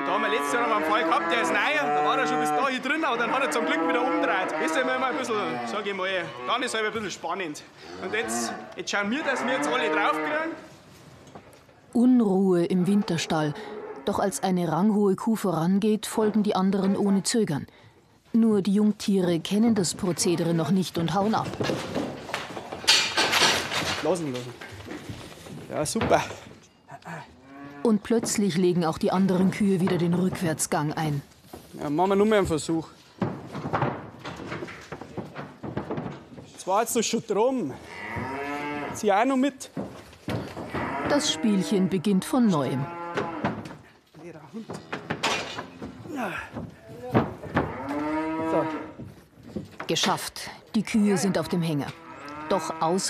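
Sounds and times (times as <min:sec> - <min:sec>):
cattle mooing: 0:00.0 - 0:06.8, 0:07.8 - 0:10.5, 0:27.3 - 0:28.0, 0:37.8 - 0:39.0, 0:40.6 - 0:43.6, 0:47.5 - 0:49.0, 0:51.2 - 0:53.0.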